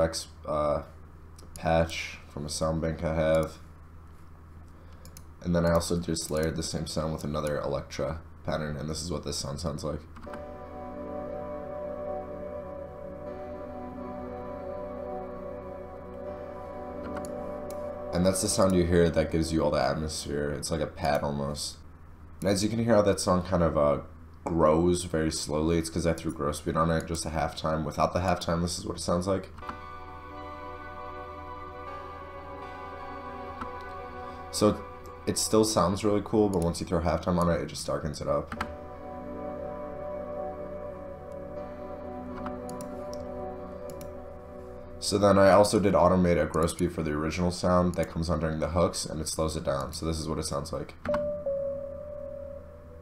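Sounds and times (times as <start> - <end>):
soft synth pad chords: 0.0 - 48.8, 49.6 - 53.0.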